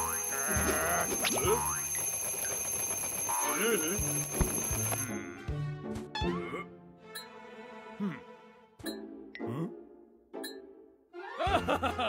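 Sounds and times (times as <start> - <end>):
cartoon background music: 0.0 - 2.0, 3.3 - 12.0
alarm clock ringing: 0.0 - 5.1
gliding character vocal sounds: 0.3 - 1.8.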